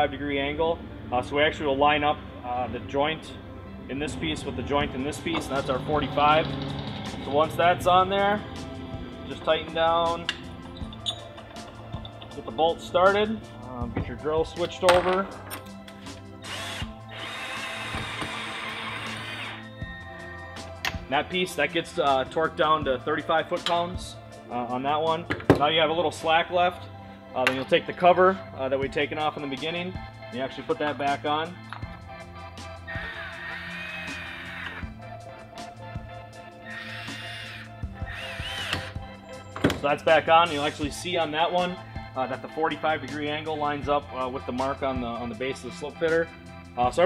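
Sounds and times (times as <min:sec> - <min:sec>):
background music: 0:00.0 - 0:47.0
cordless drill driving bolt: 0:15.5 - 0:19.6, 0:36.6 - 0:39.0.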